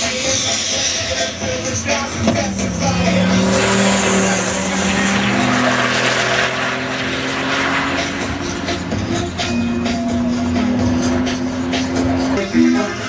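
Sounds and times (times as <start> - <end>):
car engine accelerating hard: 0.0 - 13.0.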